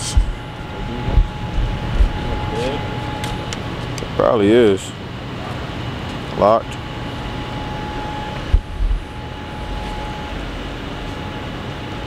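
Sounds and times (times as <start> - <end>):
short low bumps: 0.0 - 4.0
city background noise: 0.0 - 12.0
faint steady tone: 6.9 - 12.0.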